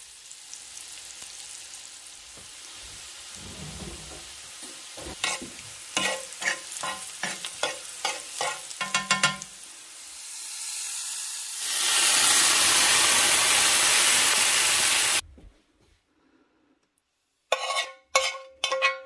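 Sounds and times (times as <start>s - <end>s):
food frying in oil: 0.0s - 15.2s
loud steady sizzling hiss: 0.0s - 15.2s
utensil scraping a pan: 2.9s - 9.5s, 17.5s - 19.0s.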